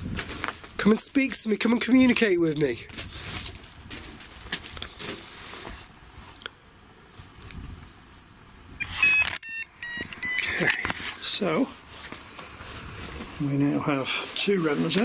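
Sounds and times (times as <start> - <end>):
high-pitched electronic beeps: 8.8 - 10.6.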